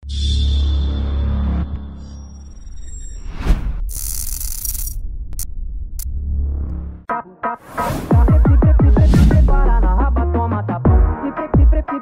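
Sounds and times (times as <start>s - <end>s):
deep bass hit: 8.1s - 10.2s.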